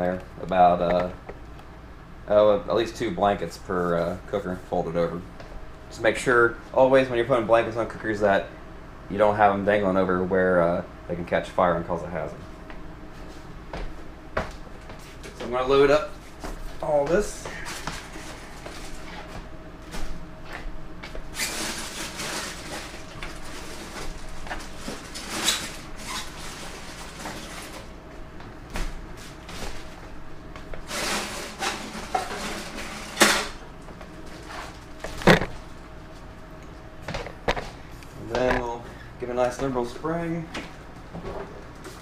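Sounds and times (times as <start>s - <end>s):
foil bags rustling and scraping: 21.3s - 27.9s, 30.8s - 33.6s.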